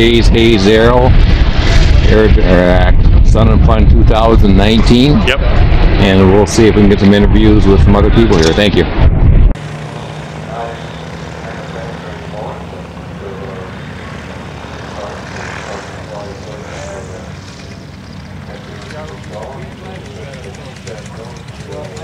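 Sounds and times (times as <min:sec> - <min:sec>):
ultralight aircraft engine humming: 0:09.6 - 0:22.0
faint voices: 0:10.4 - 0:22.0.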